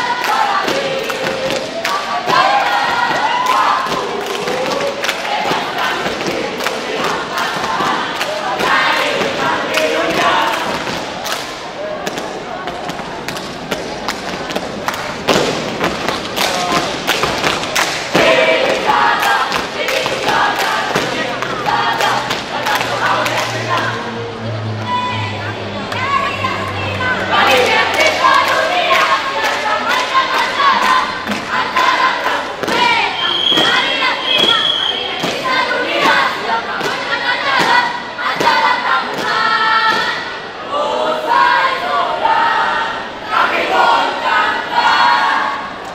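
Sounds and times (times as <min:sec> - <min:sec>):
group shouting chant: 0:00.0 - 0:12.0, 0:18.1 - 0:24.2, 0:24.8 - 0:45.8.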